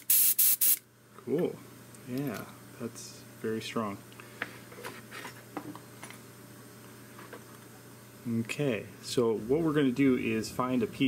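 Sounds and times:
steady low hum: 0.8 - 11.0.

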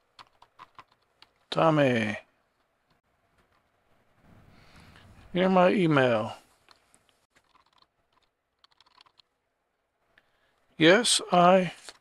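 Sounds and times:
faint keyboard typing: 0.0 - 1.5, 6.7 - 9.3.

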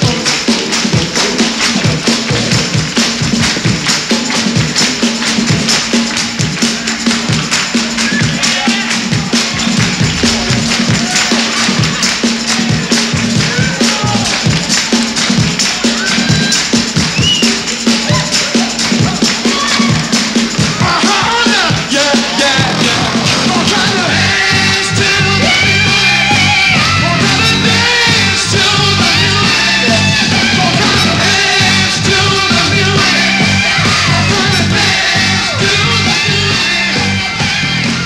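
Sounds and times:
drums: 0.0 - 38.0
horns: 7.5 - 38.0.

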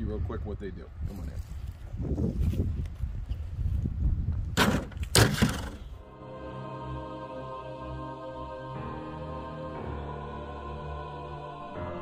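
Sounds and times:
wind rumble on microphone: 0.0 - 6.0.

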